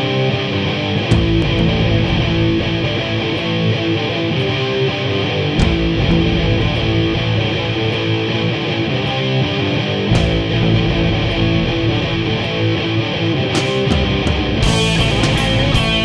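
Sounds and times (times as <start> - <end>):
electric guitar: 0.0 - 16.0
rock band playing: 0.0 - 16.0
deep bass: 1.1 - 4.0, 5.6 - 8.3, 10.1 - 13.2, 13.9 - 16.0.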